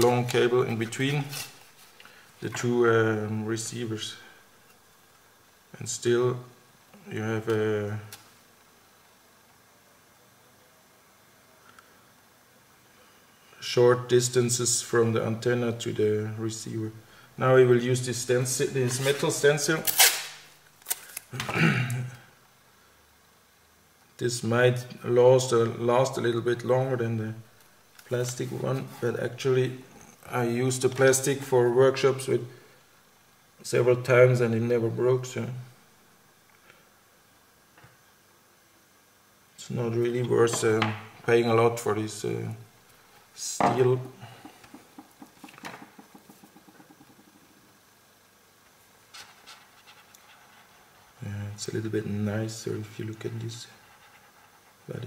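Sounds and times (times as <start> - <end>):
masking tape ripping from roll: 19.8 - 21.4
person coughing: 21.4 - 22.1.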